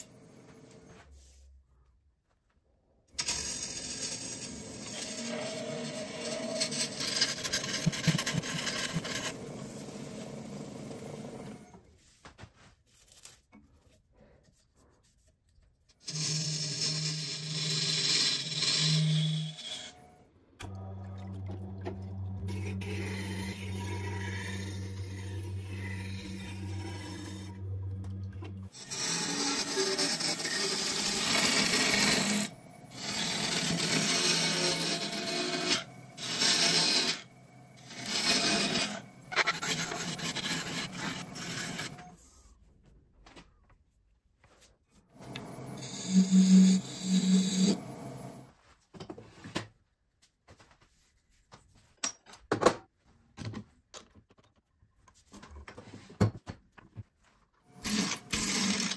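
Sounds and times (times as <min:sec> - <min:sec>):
grinder motor hum: 0:20.6 - 0:42.0
lathe gouge scraping hiss: 0:45.8 - 0:48.2.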